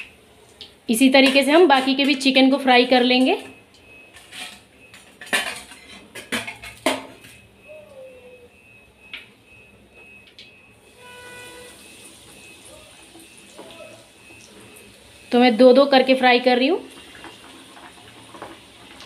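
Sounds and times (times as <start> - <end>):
metal utensils clinking on pan: 1.1 - 2.4, 4.2 - 7.2.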